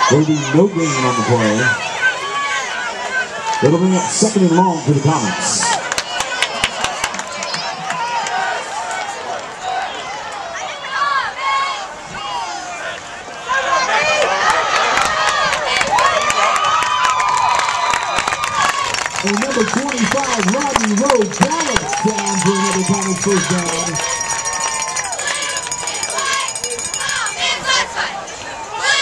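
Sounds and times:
man's voice: 0:00.0 - 0:01.8, 0:03.6 - 0:05.7, 0:19.2 - 0:24.0
crowd yelling and cheering: 0:00.0 - 0:29.0.

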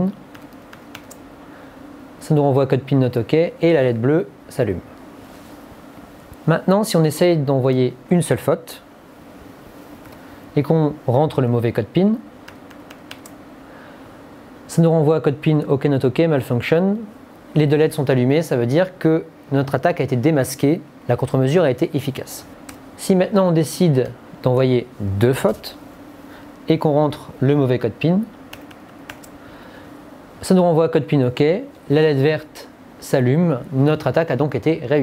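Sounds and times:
laptop keystrokes: 0:00.3 - 0:01.2, 0:12.4 - 0:13.4, 0:28.5 - 0:29.4.

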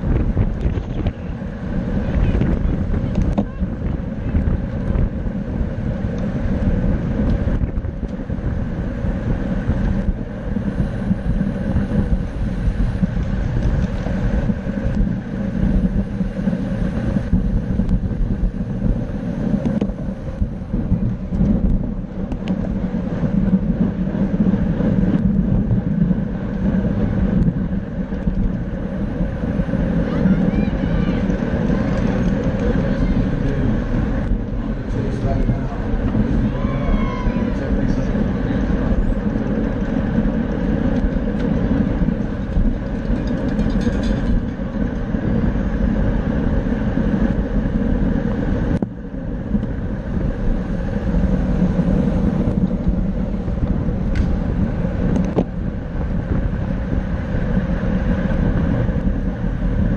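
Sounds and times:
wind rushing over microphone: 0:00.0 - 0:59.9.

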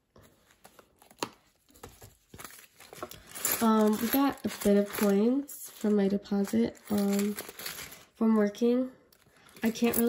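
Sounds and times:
plastic pouch rustling: 0:00.2 - 0:08.2.

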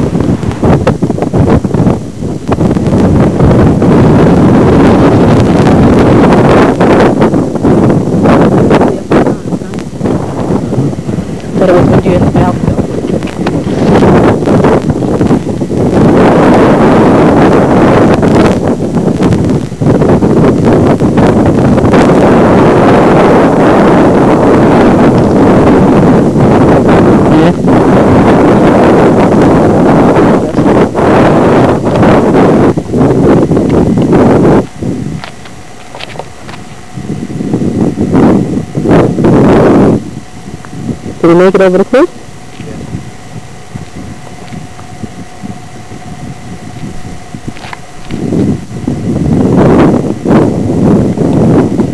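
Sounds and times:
wind buffeting microphone: 0:00.0 - 0:51.9.

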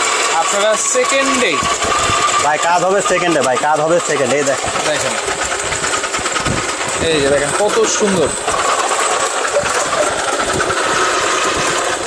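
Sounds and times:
electric slicer motor running: 0:00.0 - 0:12.0
steady whine: 0:00.0 - 0:12.0
people talking: 0:00.3 - 0:01.7, 0:02.4 - 0:05.2, 0:07.0 - 0:08.4, 0:09.4 - 0:10.3.

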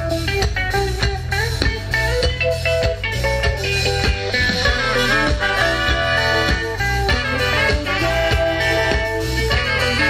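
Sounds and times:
live band with brass section: 0:00.0 - 0:10.0.

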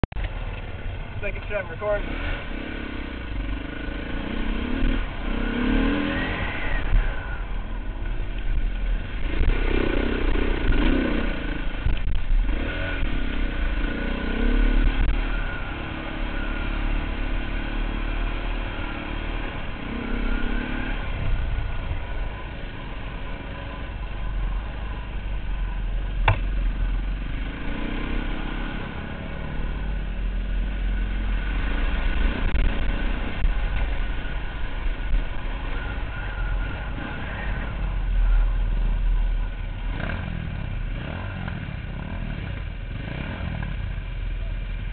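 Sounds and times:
heavy low rumble: 0:00.0 - 0:17.0, 0:18.1 - 0:44.9
dirt bike engine revving: 0:01.8 - 0:07.2, 0:09.2 - 0:21.2
sharp knock: 0:26.2 - 0:26.5.

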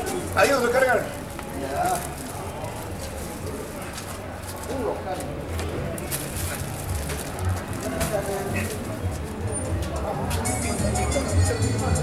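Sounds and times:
faint voices: 0:00.0 - 0:12.0
low street rumble: 0:00.0 - 0:12.0.

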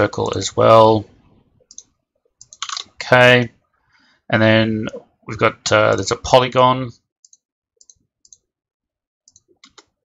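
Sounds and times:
computer mouse clicking: 0:01.7 - 0:02.9, 0:07.2 - 0:08.5, 0:09.3 - 0:10.0.

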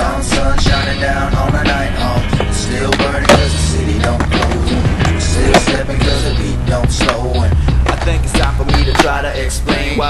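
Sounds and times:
hip-hop music with steady beat: 0:00.0 - 0:10.0
skateboard wheels rolling on asphalt: 0:00.0 - 0:10.0
skateboard clacks: 0:02.4 - 0:06.2, 0:06.9 - 0:09.9.

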